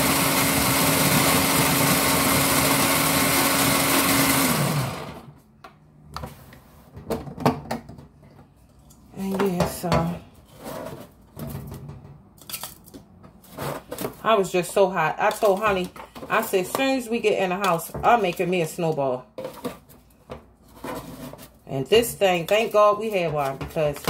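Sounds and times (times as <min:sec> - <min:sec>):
ice shaving machine grinding: 0:00.0 - 0:05.3.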